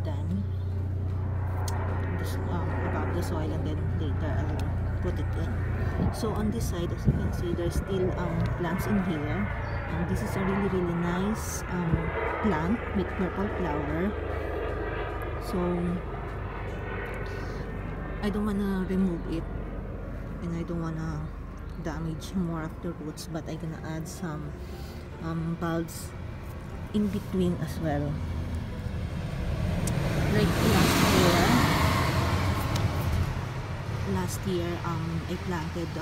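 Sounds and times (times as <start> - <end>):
distant engine rumble: 0.0 - 36.0.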